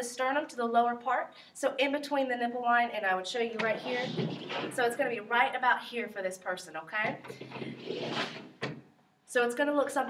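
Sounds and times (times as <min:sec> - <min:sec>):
manikin scraping on tabletop: 0:03.6 - 0:05.0, 0:07.1 - 0:08.8.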